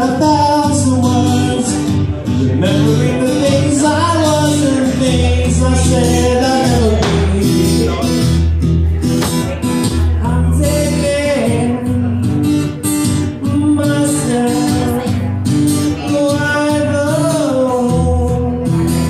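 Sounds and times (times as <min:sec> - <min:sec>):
man singing: 0:00.0 - 0:19.0
strummed acoustic guitar: 0:00.0 - 0:19.0.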